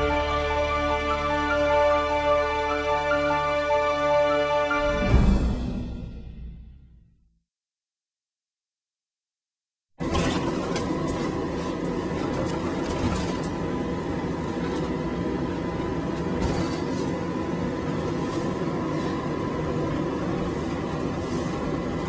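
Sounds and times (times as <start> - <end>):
road and engine rumble: 10.0 - 22.0.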